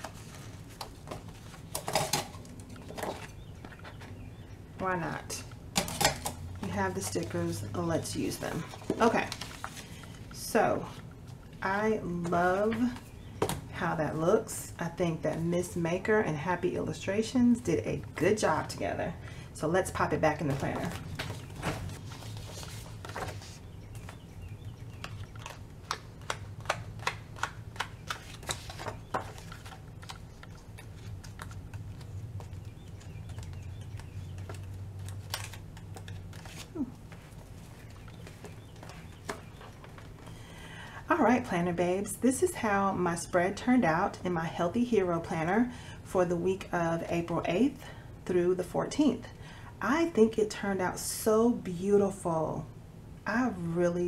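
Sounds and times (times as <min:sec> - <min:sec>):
paper rustling and clicks: 0:25.0 - 0:40.2.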